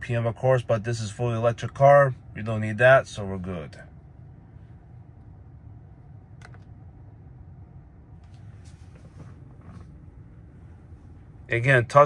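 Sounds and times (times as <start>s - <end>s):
low cabin hum: 0.0s - 12.0s.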